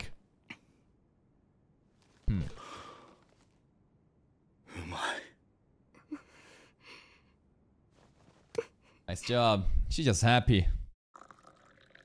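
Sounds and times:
person sighing: 2.2s - 3.2s
faint breaths: 2.3s - 3.4s.

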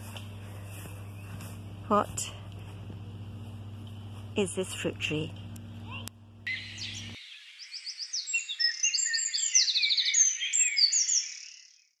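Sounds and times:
birds chirping and trilling: 5.8s - 12.0s.

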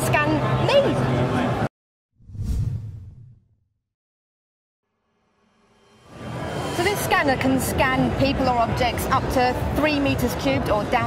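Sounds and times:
low whoosh: 2.2s - 3.6s.

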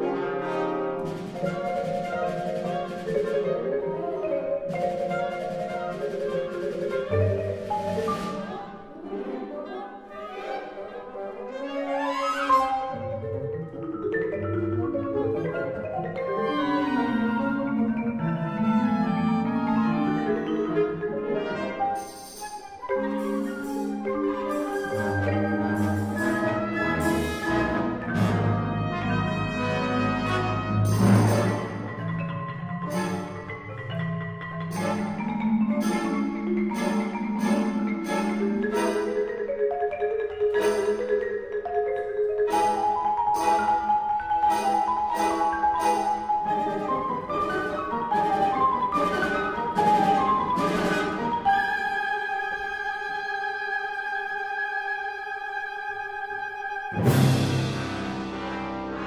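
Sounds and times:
orchestral music: 0.0s - 59.0s
marimba runs: 0.9s - 8.9s, 12.0s - 53.6s
orchestra playing sustained chords: 23.0s - 33.9s, 56.8s - 59.0s.

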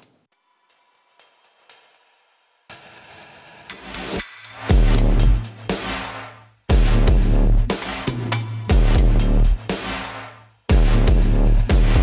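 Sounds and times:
hi-hat and cymbals: 0.4s - 12.0s.

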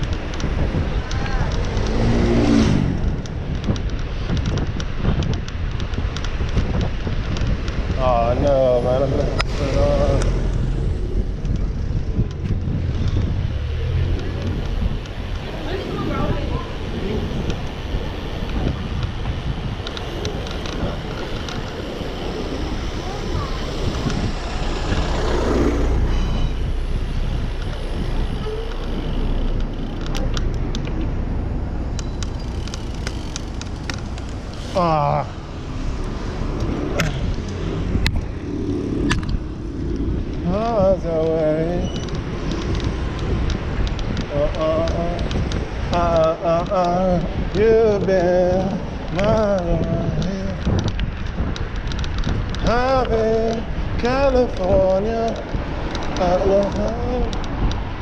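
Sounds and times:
sharp clicks: 0.0s - 2.4s, 18.4s - 22.4s, 23.8s - 31.2s, 31.8s - 34.8s, 35.5s - 58.0s
bicycle road rumble: 0.0s - 58.0s
wind noise: 0.0s - 58.0s.

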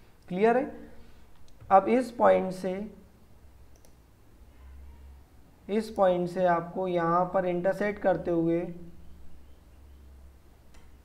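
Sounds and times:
faint computer mouse clicking: 1.3s - 1.7s, 3.7s - 4.0s, 10.7s - 11.0s.

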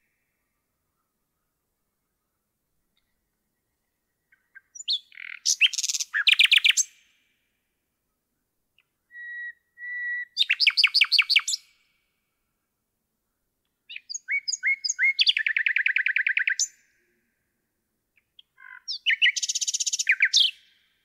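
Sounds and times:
nightingale singing: 0.0s - 7.2s, 8.8s - 12.0s, 13.9s - 17.0s, 18.1s - 21.0s.

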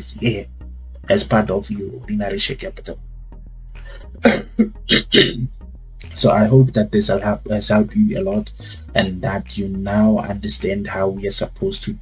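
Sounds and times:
faint background music: 0.0s - 12.0s
man coughing: 3.9s - 5.5s.

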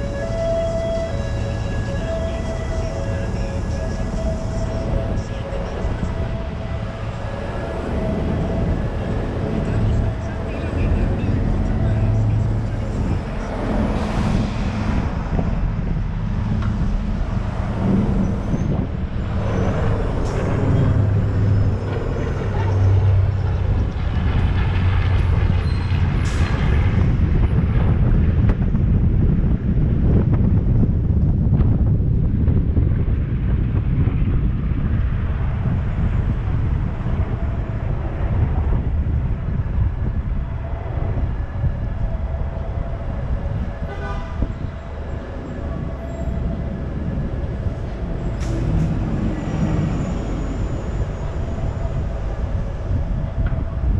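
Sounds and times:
bus passing close: 0.0s - 53.9s
low rumble of traffic: 0.0s - 53.9s.

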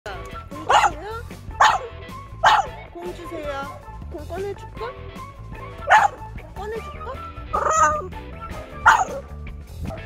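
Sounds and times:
background music: 0.1s - 10.0s
dog barking: 0.6s - 1.0s, 1.6s - 2.8s, 5.8s - 6.3s, 7.5s - 8.1s, 8.8s - 9.3s.

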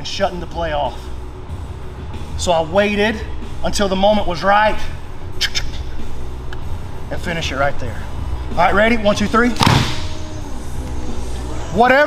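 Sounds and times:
low hum of gym background: 0.0s - 12.0s.

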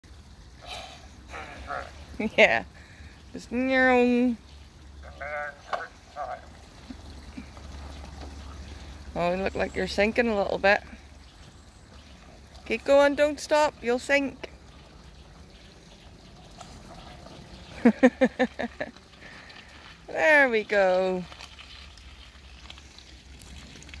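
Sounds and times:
low steady rumble: 0.0s - 24.0s
stream trickling over stones: 0.0s - 24.0s
water sloshing around wheels: 0.0s - 24.0s
small scattered ticks: 20.8s - 24.0s.

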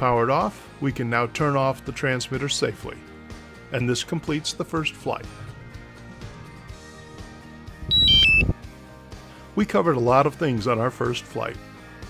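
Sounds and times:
soft background music: 0.0s - 12.0s
electronic chime of high beeps: 7.9s - 8.5s.

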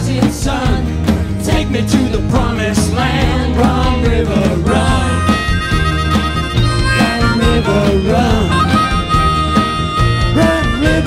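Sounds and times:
live band backing: 0.0s - 11.0s
harmonica solo: 4.8s - 11.0s.

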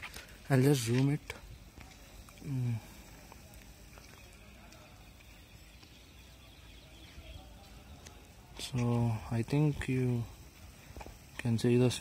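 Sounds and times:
faint high chirps: 0.2s - 11.9s.

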